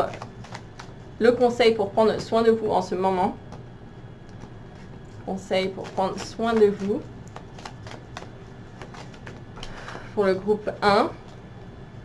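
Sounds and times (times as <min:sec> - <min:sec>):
cards shuffling: 0:00.0 - 0:01.0, 0:04.3 - 0:09.8
low room hum: 0:00.0 - 0:12.0.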